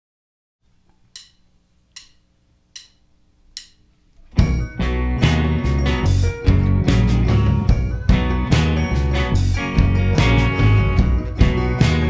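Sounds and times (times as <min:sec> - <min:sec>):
faint amplifier hum: 0:00.6 - 0:12.0
drumsticks clicking together: 0:00.9 - 0:04.3.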